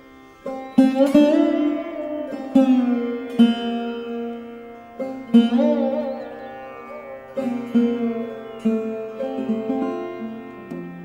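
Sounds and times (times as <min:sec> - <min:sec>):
plucked string instrument melody: 0:00.0 - 0:11.0.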